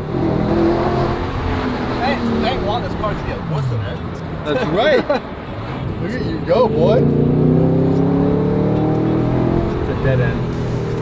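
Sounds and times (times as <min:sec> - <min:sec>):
car engine accelerating: 0:05.6 - 0:11.0.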